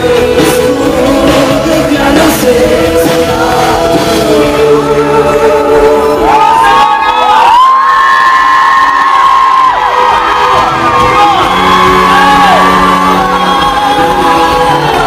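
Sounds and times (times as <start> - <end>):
group of people singing: 0.0 - 7.2, 12.8 - 15.0
live pop-rock band: 0.0 - 15.0
audience cheering and whooping: 6.2 - 15.0.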